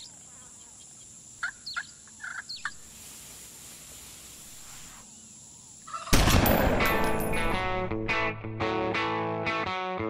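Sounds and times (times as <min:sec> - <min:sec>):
faint steady hiss: 0:00.0 - 0:06.0.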